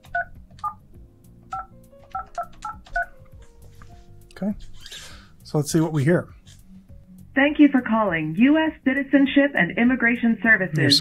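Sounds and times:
touch-tone keypad beeps: 10.8 - 11.0.

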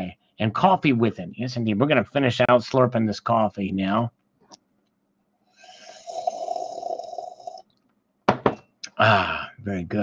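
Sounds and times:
person slurping coffee: 5.6 - 7.8.

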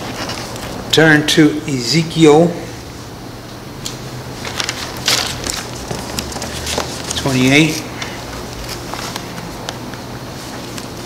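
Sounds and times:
pages turning and rustling: 4.4 - 9.6.

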